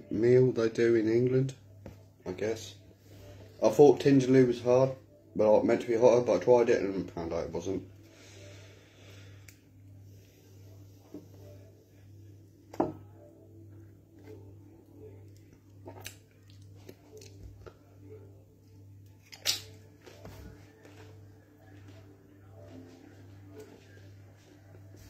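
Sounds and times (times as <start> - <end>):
faint background music: 0.0 - 25.0
steady low hum: 0.0 - 25.0.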